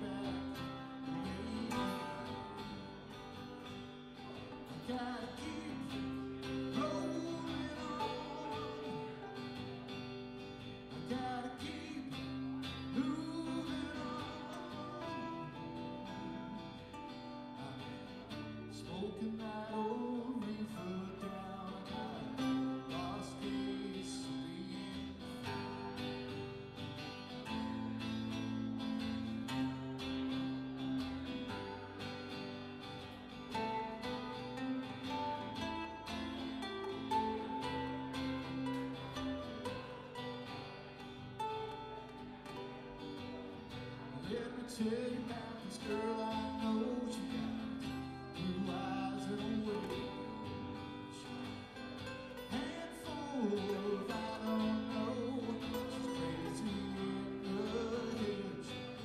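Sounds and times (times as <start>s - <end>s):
acoustic guitars strumming: 0.0s - 59.0s
man singing: 0.0s - 59.0s.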